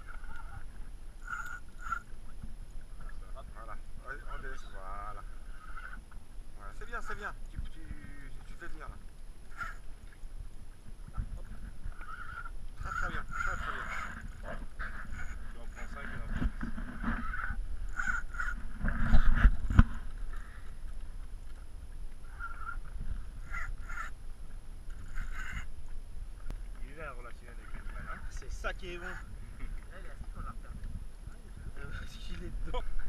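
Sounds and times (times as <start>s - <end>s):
fishing reel whirring: 1.2s - 2.2s, 9.5s - 9.9s, 12.0s - 14.3s, 17.2s - 19.4s, 22.2s - 24.2s, 24.9s - 25.7s
wind on microphone: 9.5s - 33.0s.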